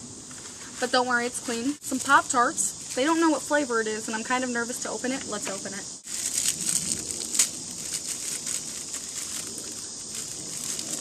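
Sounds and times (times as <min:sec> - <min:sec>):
foil ripping: 0:06.0 - 0:11.0
foil wrapper crinkling: 0:06.0 - 0:11.0.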